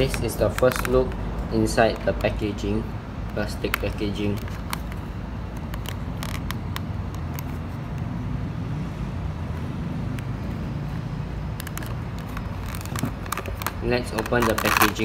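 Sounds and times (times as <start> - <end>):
plastic packaging crackling: 0.0 - 1.2, 3.4 - 7.7, 11.5 - 15.0.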